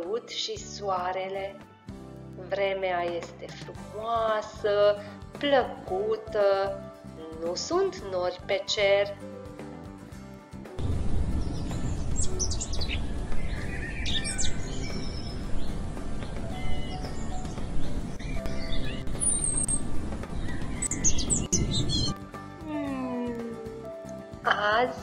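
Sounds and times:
low rushing background: 10.2 - 22.5
birds chirping and trilling: 11.2 - 22.2.

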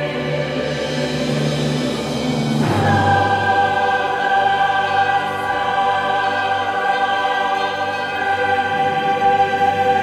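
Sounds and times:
choir singing held chord: 0.0 - 10.0
string orchestra: 0.0 - 10.0.

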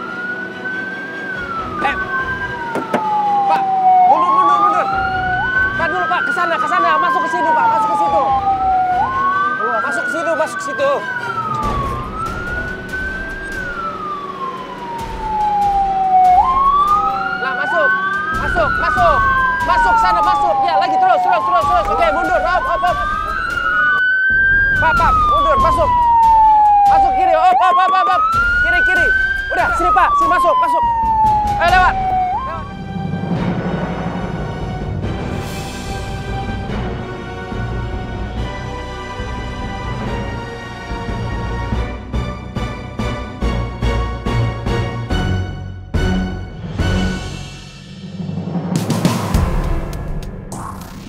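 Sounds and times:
ambulance siren wailing: 0.0 - 47.4.

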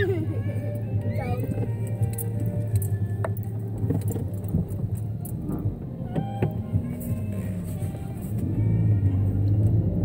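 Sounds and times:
car interior hum: 0.0 - 10.0
music playing: 0.0 - 10.0.

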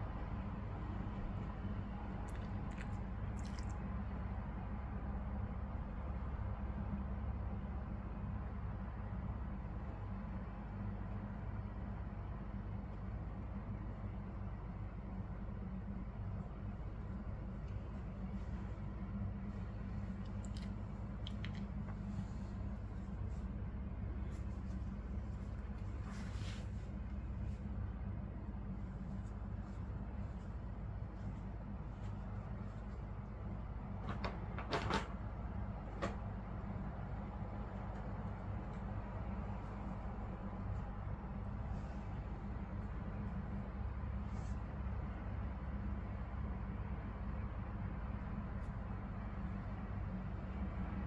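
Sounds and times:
steady low hum: 0.0 - 51.0
hands rubbing dog fur: 19.5 - 27.8, 28.9 - 33.2
wet wipe rustling scrapes: 19.5 - 27.8, 28.8 - 33.2.

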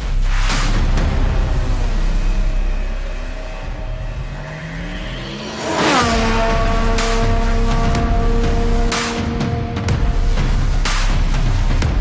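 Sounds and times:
cinematic trailer music: 0.0 - 12.0
loud rising whoosh: 0.4 - 10.8
racing car engine revving: 1.5 - 11.6.

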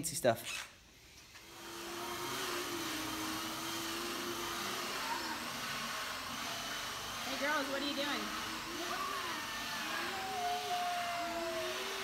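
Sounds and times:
motor whirring: 0.9 - 12.0.

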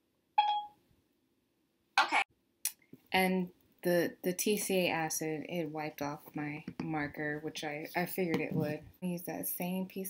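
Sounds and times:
smartphone electronic beep: 0.4 - 0.8.

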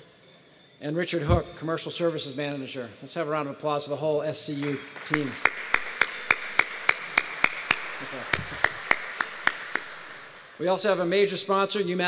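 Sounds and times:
audience clapping: 4.6 - 10.6
close hand claps: 4.6 - 10.6.

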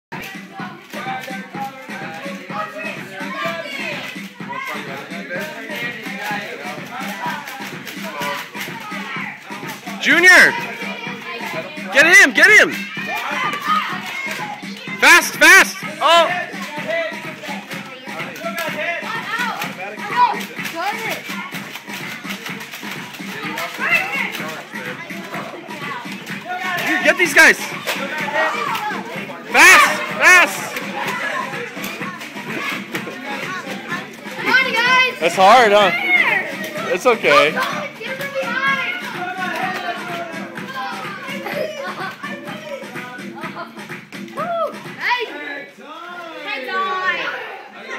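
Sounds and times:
background music with steady beat: 0.1 - 47.9
children shouting: 0.2 - 6.4, 7.0 - 43.7, 44.3 - 45.4, 46.3 - 47.9.

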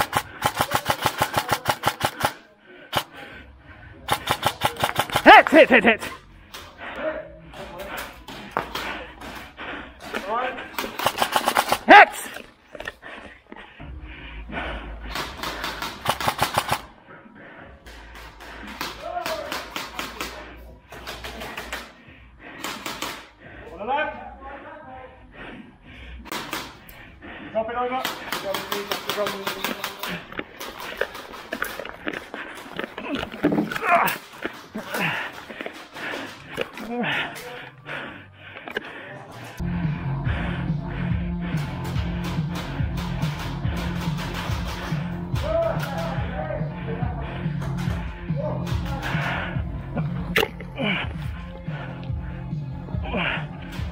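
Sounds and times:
airsoft guns firing bursts: 0.0 - 3.2, 4.1 - 5.9, 10.2 - 12.3, 15.1 - 16.9, 18.1 - 22.0, 22.6 - 23.3, 26.3 - 26.9, 28.0 - 31.8, 41.8 - 46.3
players calling out: 0.0 - 24.0.

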